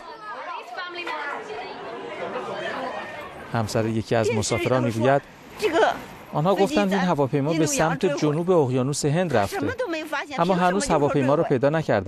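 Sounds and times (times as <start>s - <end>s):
people talking at once: 0.0s - 8.7s.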